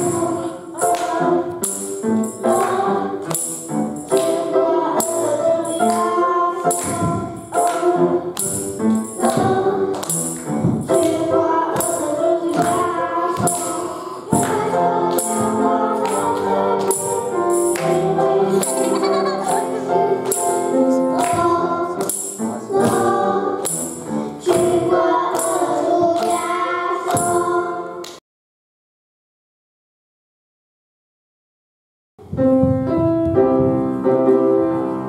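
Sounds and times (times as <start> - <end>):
children's choir singing a hymn: 0.0 - 28.1, 33.0 - 35.0
jingling musical accompaniment: 0.0 - 28.1.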